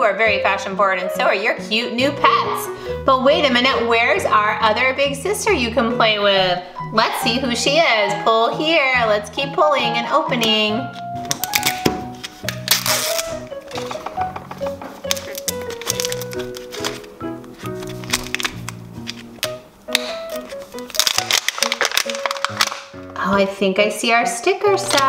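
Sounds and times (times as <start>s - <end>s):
background music melody: 0.0s - 25.0s
plastic wrapping crinkling and tearing: 11.2s - 23.2s.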